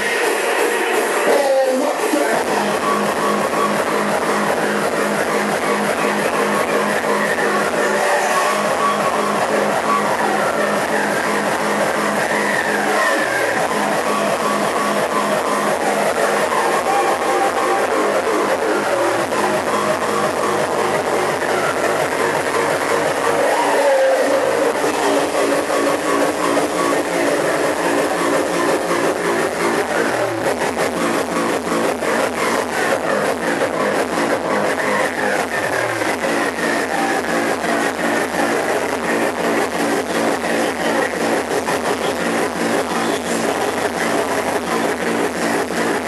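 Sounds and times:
distorted synth lines: 0.0s - 46.0s
hard techno music: 0.0s - 46.0s.

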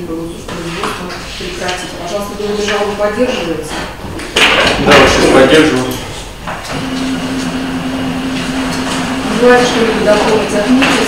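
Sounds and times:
faint background noise: 0.0s - 6.9s
steady low hum: 4.8s - 11.0s.

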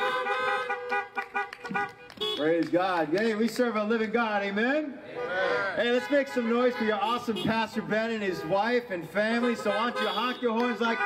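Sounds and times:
car horns honking: 0.0s - 2.6s, 5.2s - 11.0s.

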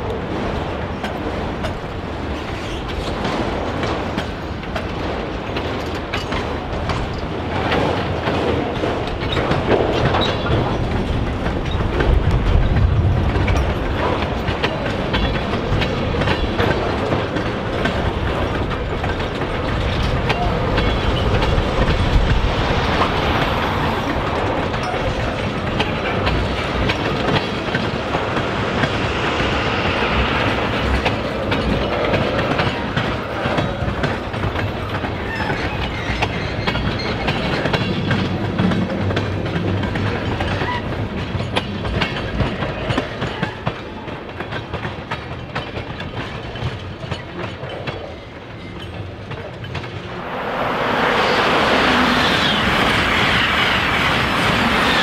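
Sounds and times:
train wheels clicking over rail joints: 0.0s - 50.2s
train rumble: 0.0s - 55.0s.

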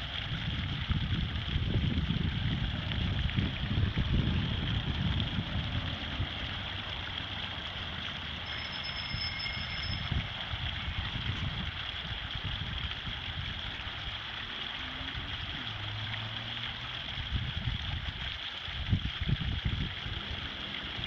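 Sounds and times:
wind rumbling on microphone: 0.0s - 7.7s, 8.8s - 16.0s, 16.8s - 21.0s
fountain splashing: 0.0s - 21.0s.

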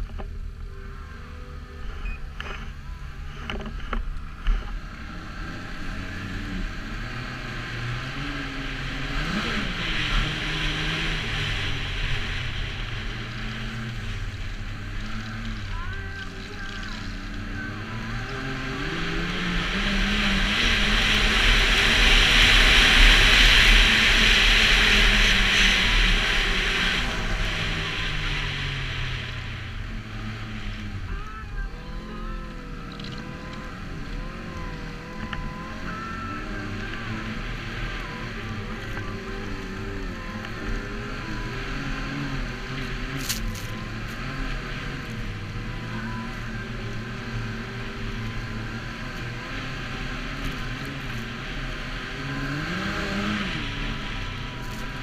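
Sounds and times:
snowmobile engine running: 0.0s - 55.0s.

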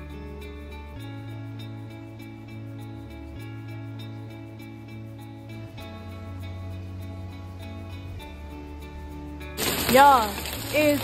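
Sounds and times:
soft background music: 0.0s - 11.0s
heavy rain on a street: 9.6s - 11.0s.

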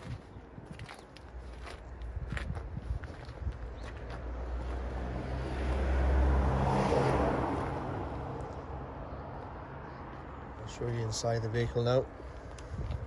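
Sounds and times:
motor vehicle driving past: 4.2s - 10.0s.

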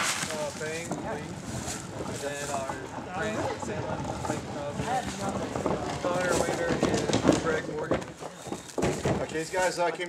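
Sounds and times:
people talking: 0.2s - 1.4s, 2.1s - 8.0s.

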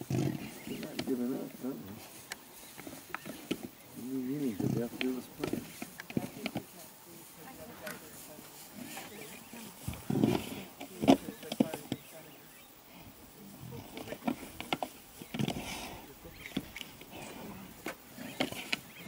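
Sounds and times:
low animal grunts: 0.0s - 2.0s, 2.8s - 6.4s, 9.9s - 11.4s, 15.2s - 19.0s.

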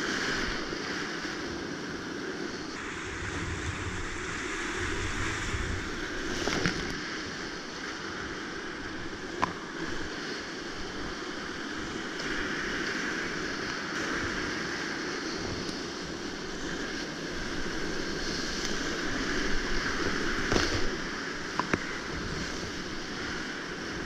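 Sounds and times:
wind on microphone: 0.0s - 24.0s
river rapids rushing: 2.6s - 24.0s.

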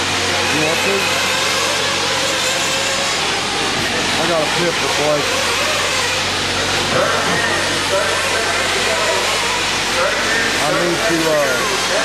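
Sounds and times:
small rc car engines racing: 0.0s - 12.0s.

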